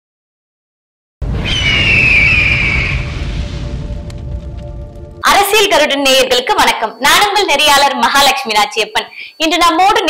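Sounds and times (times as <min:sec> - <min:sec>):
deep rumble: 0:01.2 - 0:06.0
high screech falling in pitch: 0:01.4 - 0:03.4.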